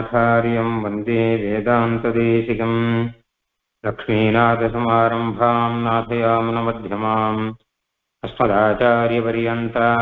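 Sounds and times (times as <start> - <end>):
man chanting verses: 0.0 - 3.2, 3.8 - 7.6, 8.2 - 10.0.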